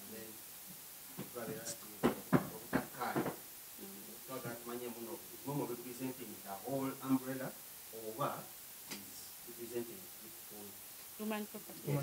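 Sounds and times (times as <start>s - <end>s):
person speaking: 3.8s - 4.2s, 11.2s - 12.0s.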